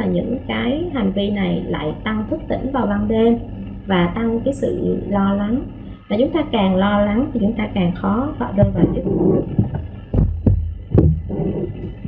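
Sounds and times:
dull low thumps: 0:08.4 - 0:12.0.

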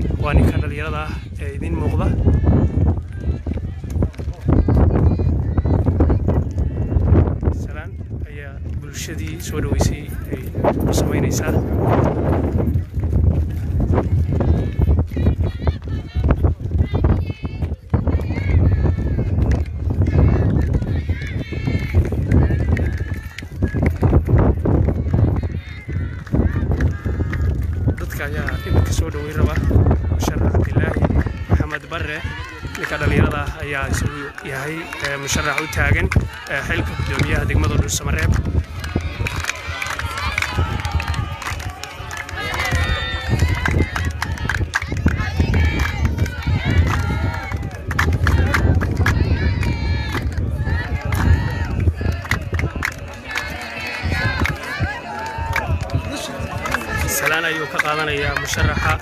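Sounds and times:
voices talking: 0:00.0 - 0:59.0
wind buffeting microphone: 0:00.0 - 0:59.0.

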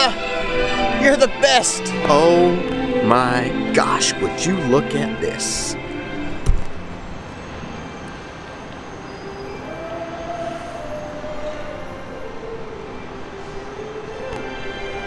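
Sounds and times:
monorail train rumbling and whining: 0:00.0 - 0:15.0.

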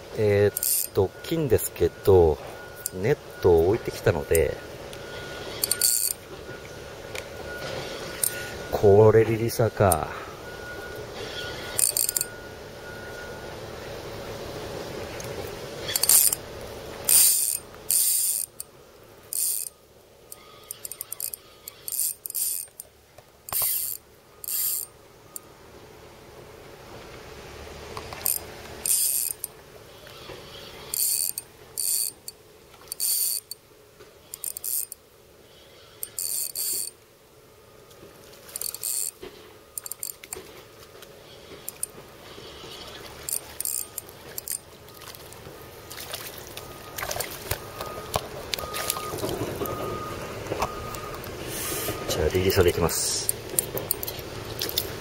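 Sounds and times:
fishing reel drag clicking: 0:00.5 - 0:01.0, 0:05.5 - 0:06.2, 0:11.7 - 0:12.4, 0:15.8 - 0:16.4, 0:17.1 - 0:18.7, 0:19.3 - 0:22.9, 0:23.5 - 0:24.9, 0:28.2 - 0:29.5, 0:30.1 - 0:33.6, 0:34.3 - 0:35.0, 0:36.0 - 0:36.9, 0:38.6 - 0:39.2, 0:39.8 - 0:40.4, 0:41.6 - 0:41.9, 0:43.3 - 0:44.6.

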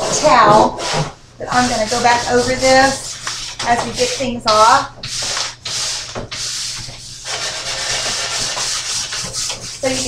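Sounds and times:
wet towel scrubbing rusty tub: 0:00.0 - 0:10.0.

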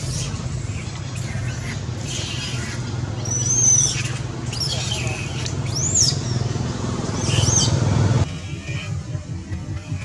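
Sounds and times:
background music with low beat: 0:08.3 - 0:10.0.

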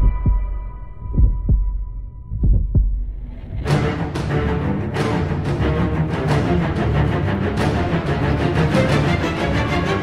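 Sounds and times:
heartbeat thumps: 0:00.0 - 0:03.6.

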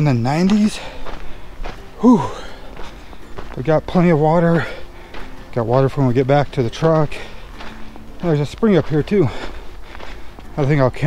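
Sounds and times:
footsteps on dirt trail: 0:00.0 - 0:11.0
person whooing: 0:02.0 - 0:02.6.

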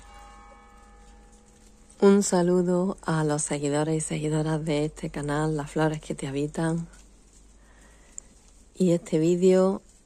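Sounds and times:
bell-like strike ringing: 0:00.0 - 0:02.2.

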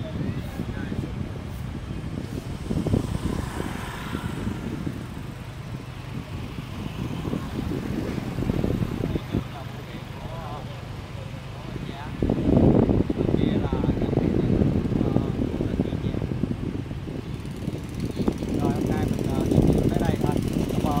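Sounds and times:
wind on microphone: 0:00.0 - 0:10.6, 0:11.6 - 0:21.0
engines rumbling: 0:00.0 - 0:21.0.

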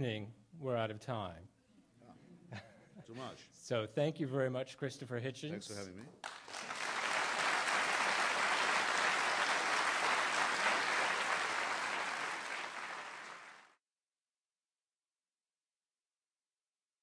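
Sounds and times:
audience applauding: 0:06.2 - 0:13.8.

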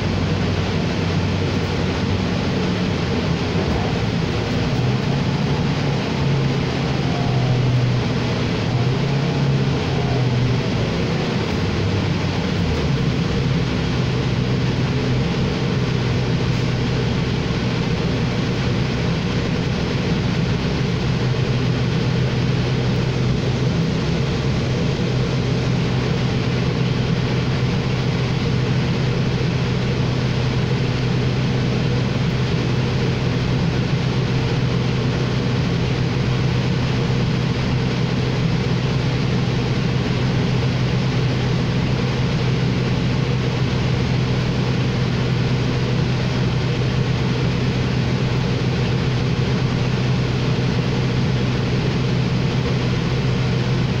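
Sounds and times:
bus engine idling: 0:00.0 - 0:54.0.

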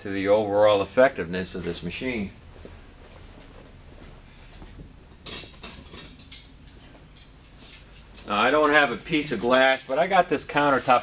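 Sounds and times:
metal rods clinking and ringing: 0:05.1 - 0:09.8.

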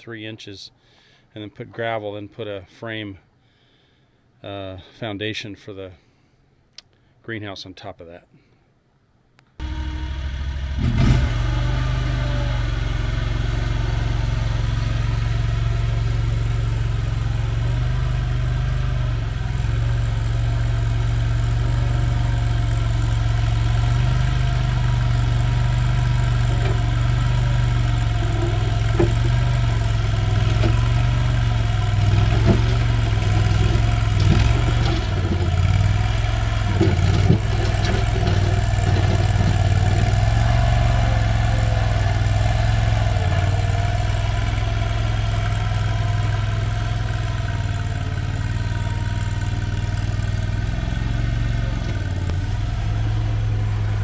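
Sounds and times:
skid steer engine running: 0:09.6 - 0:54.0.

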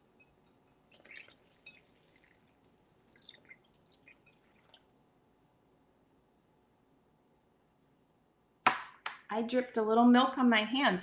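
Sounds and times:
milk pouring and dripping: 0:00.0 - 0:05.0.

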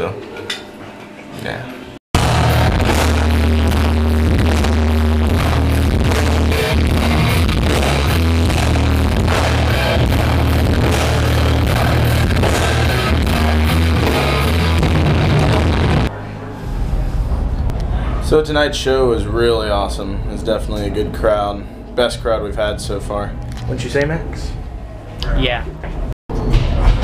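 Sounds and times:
rock band playing live: 0:02.2 - 0:16.1.

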